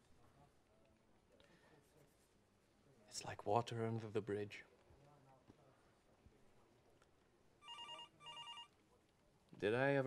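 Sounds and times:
telephone ringing: 7.6s - 8.8s.

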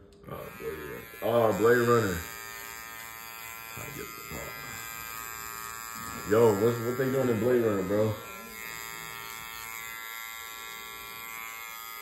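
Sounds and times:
electric hair clipper buzzing: 0.2s - 12.0s.

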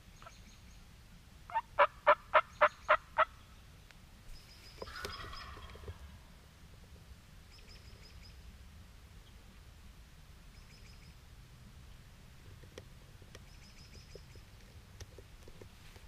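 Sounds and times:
rough turkey call: 1.5s - 3.3s, 4.8s - 6.2s
turkey yelping: 1.5s - 3.3s, 4.9s - 5.9s
small birds chirping: 2.4s - 6.0s, 13.3s - 14.8s.

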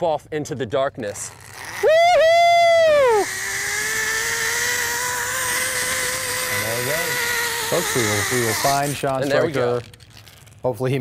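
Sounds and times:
zip line pulleys whining: 1.0s - 10.8s.

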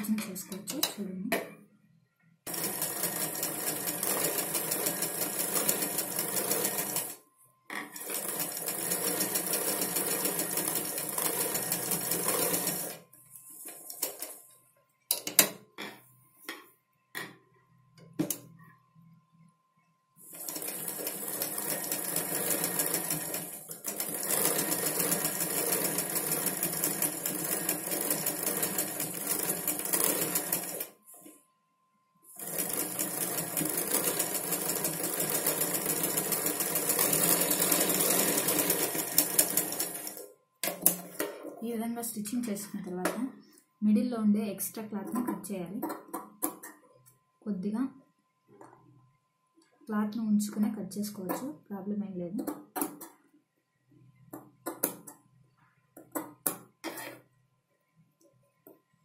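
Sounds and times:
sewing machine stitching: 2.5s - 7.2s, 7.8s - 13.0s, 20.3s - 30.9s, 32.4s - 41.0s, 56.8s - 57.2s.

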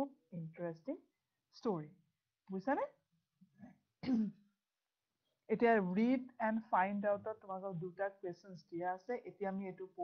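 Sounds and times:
woman clearing her throat: 4.0s - 4.4s.

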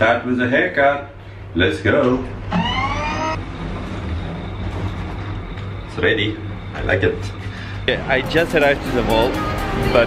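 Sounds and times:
elevator car rumbling: 2.0s - 10.0s
short rising tone: 2.4s - 6.7s.

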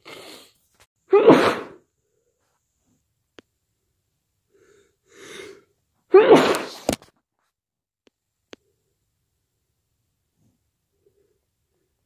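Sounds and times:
person sneezing: 1.1s - 1.8s, 5.2s - 7.0s
breathy intake of breath: 4.5s - 5.7s.

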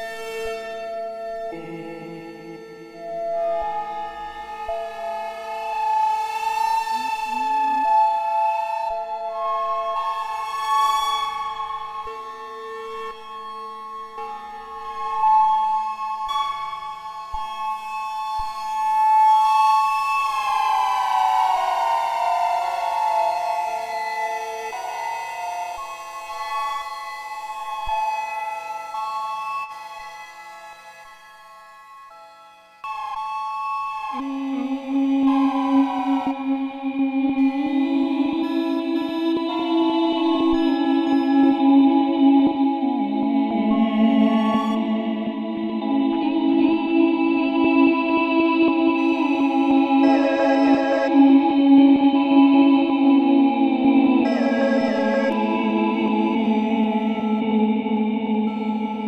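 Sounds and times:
synthesizer drone: 34.2s - 59.0s.

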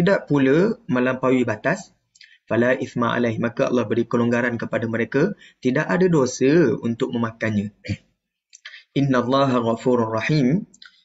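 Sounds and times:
man speaking: 0.0s - 10.9s.

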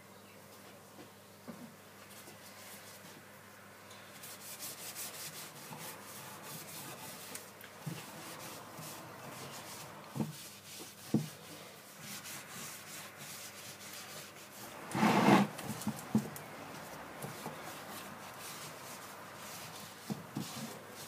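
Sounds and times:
cloth rubbing on wood: 4.2s - 21.0s.

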